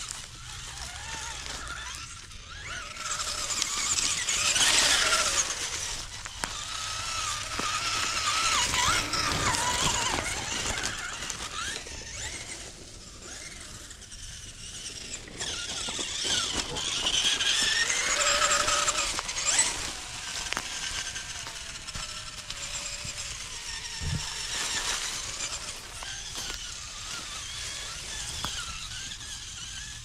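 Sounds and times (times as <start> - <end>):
toy car electric motor whine: 0.0 - 30.0
tyres crunching over leaves: 0.0 - 30.0.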